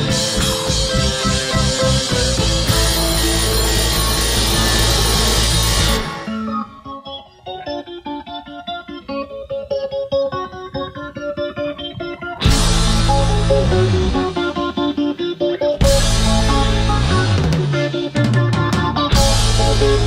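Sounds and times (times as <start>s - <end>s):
lone guitar picking notes: 0.0s - 20.0s
rock band playing: 0.0s - 20.0s.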